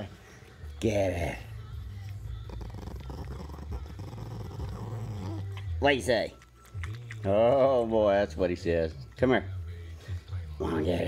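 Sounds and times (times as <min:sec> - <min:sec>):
small dog growling: 0:02.3 - 0:05.6.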